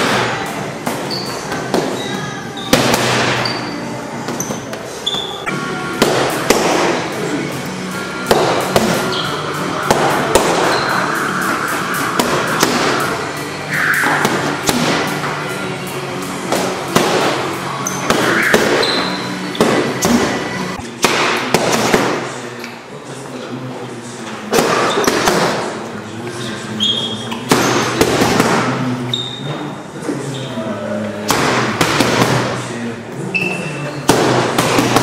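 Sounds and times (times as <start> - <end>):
punches hitting boxing pads: 2.7 - 3.5, 6.0 - 7.1, 8.2 - 9.1, 9.8 - 10.7, 12.2 - 13.1, 14.2 - 15.2, 16.4 - 18.8, 19.6 - 22.3, 24.5 - 25.7, 27.5 - 28.7, 31.3 - 32.6, 34.1 - 35.0.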